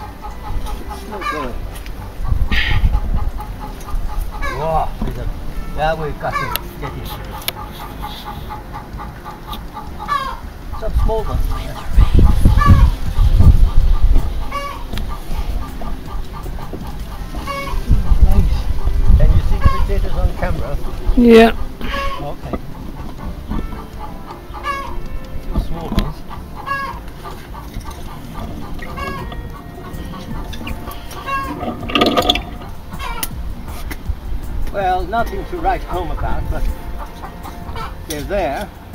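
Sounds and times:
chickens clucking: 0.0s - 38.9s.

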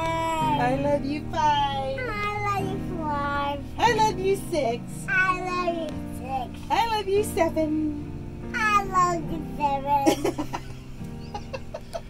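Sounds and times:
quiet background music: 0.0s - 12.0s
woman and toddler laughing: 10.0s - 12.0s.

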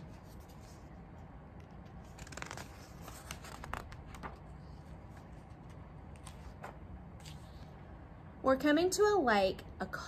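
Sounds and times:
paper rustling: 1.7s - 7.6s.

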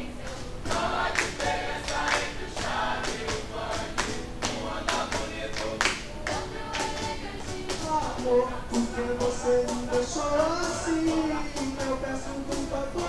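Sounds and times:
choir singing: 0.0s - 13.0s
sharp hand claps: 0.7s - 7.1s.

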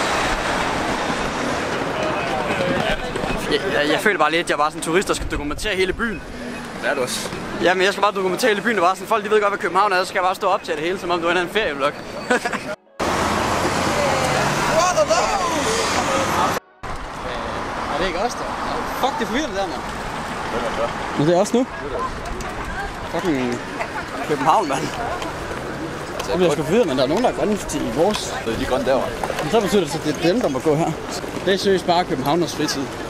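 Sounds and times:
city street traffic rushing: 0.0s - 33.0s
people talking: 1.9s - 6.2s, 6.8s - 12.8s, 13.7s - 16.6s, 17.2s - 19.8s, 20.5s - 33.0s
engine hum: 13.0s - 30.1s.

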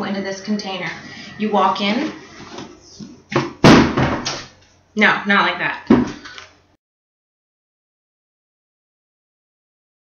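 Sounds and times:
plastic container crashing: 3.4s - 4.5s.

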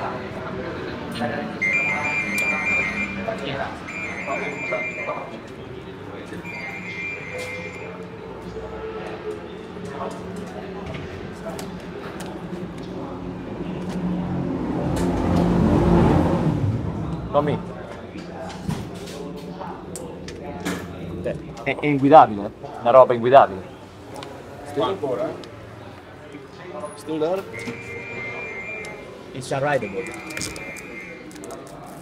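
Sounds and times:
muffled voices: 0.0s - 32.0s
high tone: 1.6s - 5.5s, 6.4s - 8.1s, 27.5s - 31.3s.

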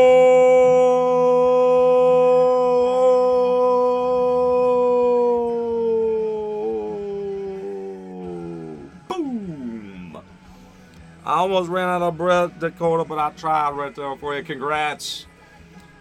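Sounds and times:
man shouting a long call: 0.0s - 10.2s.

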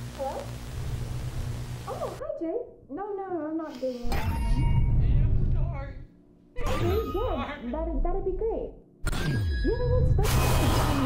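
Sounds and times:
low steady hum: 0.0s - 3.5s.

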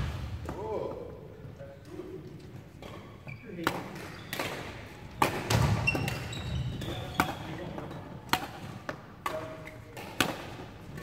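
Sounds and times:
rackets hitting shuttlecocks: 3.6s - 11.0s.

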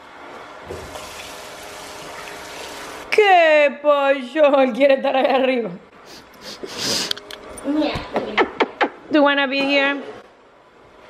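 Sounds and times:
faucet running into steel sink: 0.8s - 3.1s.

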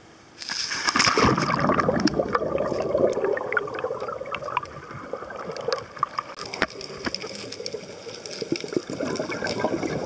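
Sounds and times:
underwater churning and bubbling: 0.8s - 10.0s.

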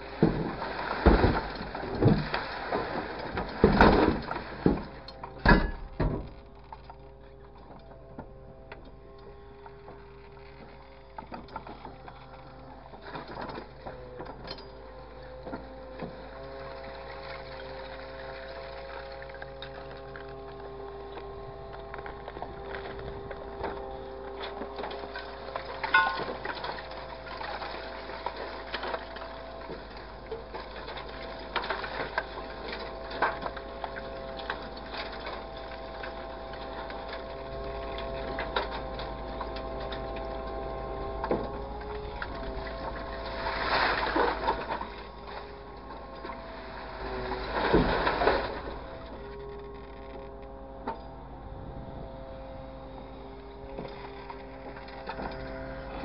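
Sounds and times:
excavator engine and hydraulics whine: 0.0s - 56.0s
metal knocks and clanks: 3.2s - 8.3s.

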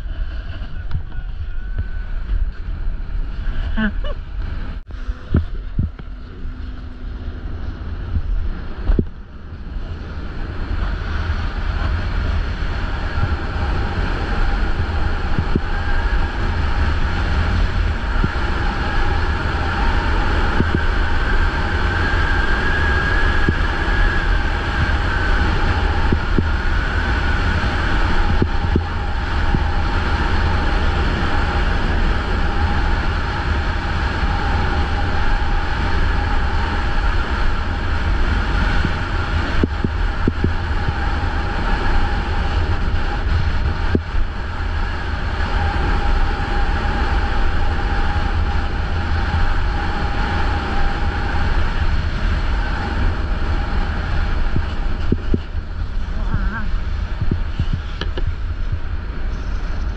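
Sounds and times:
wind rush on microphone: 0.0s - 59.9s.

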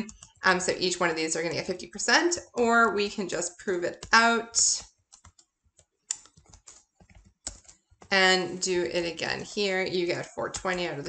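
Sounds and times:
typing on computer keyboard: 0.0s - 0.5s, 3.9s - 8.1s.

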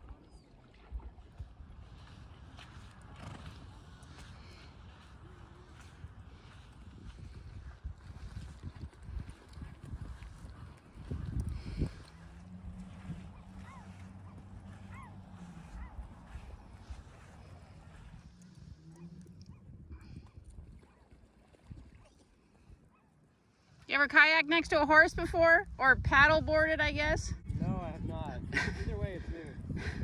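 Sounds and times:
wind rumbling on microphone: 0.0s - 23.1s, 24.0s - 30.0s
horse hooves on wet sand: 0.1s - 22.9s.

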